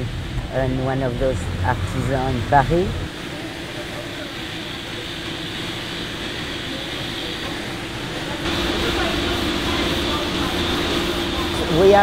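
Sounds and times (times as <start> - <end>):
stone-cutting machinery running: 1.0 - 12.0.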